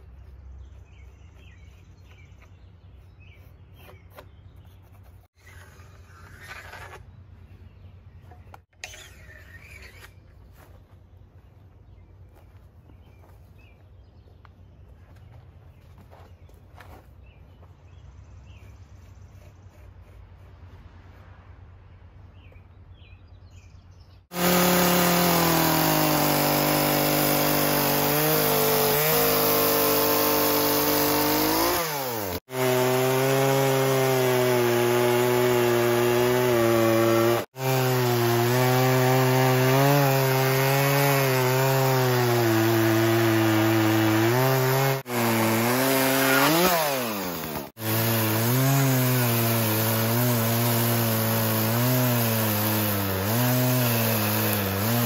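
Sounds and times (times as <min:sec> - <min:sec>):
chainsaw cutting log: 0:08.6 - 0:10.2, 0:24.2 - 0:55.0.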